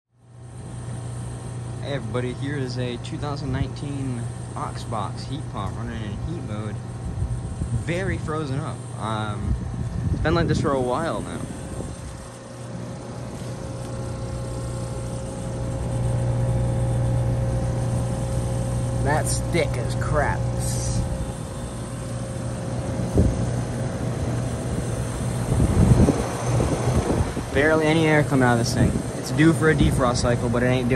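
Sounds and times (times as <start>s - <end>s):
heat pump low hum: 0.1s - 30.9s.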